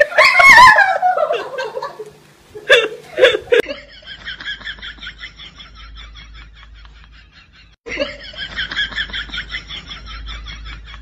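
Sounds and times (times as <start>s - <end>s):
person laughing: 0.0s - 4.1s.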